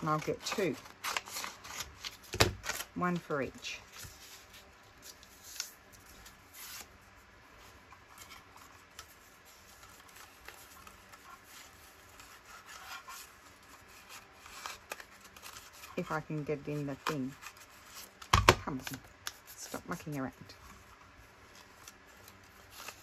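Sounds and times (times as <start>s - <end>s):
paper strip rustling and sliding: 0.0s - 23.0s.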